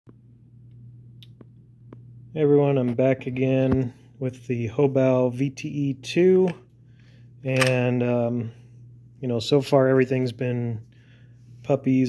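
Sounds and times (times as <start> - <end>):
faint low hum: 0.1 - 12.0.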